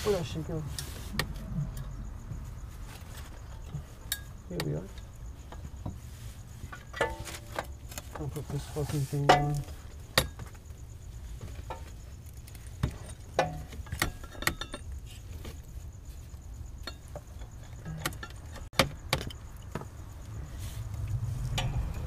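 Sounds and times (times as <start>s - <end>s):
metal clinks and taps: 3.4s - 6.0s, 11.6s - 14.9s, 16.7s - 20.0s.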